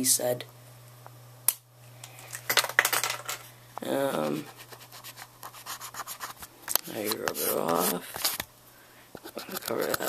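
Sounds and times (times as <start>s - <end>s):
marker scraping: 4.2s - 8.4s, 9.2s - 10.0s.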